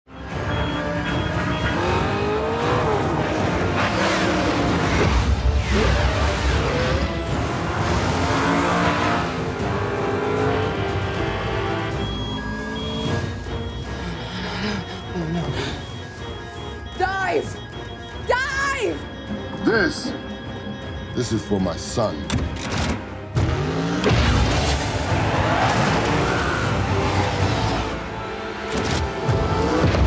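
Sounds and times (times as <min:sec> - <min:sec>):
car engines revving: 0:00.1 - 0:30.0
film music score: 0:00.1 - 0:30.0.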